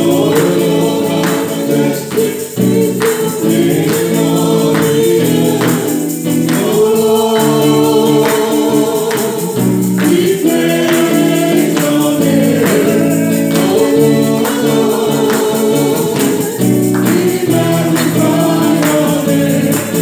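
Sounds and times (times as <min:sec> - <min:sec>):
electric guitar: 0:00.0 - 0:20.0
singers singing gospel song: 0:00.0 - 0:20.0
steady percussive beat: 0:00.0 - 0:20.0.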